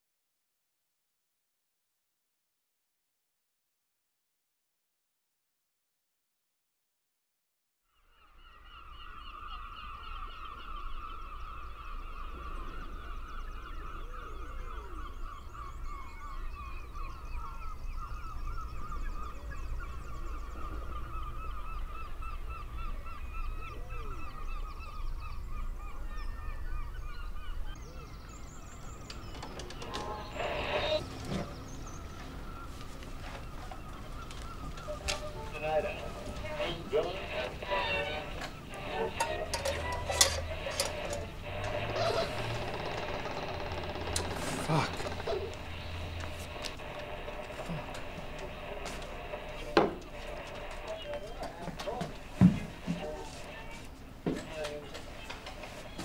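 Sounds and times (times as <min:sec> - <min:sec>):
flock of birds honking: 0:08.5 - 0:27.8, 0:29.1 - 0:56.0
portable radio handling clicks: 0:38.2 - 0:42.0.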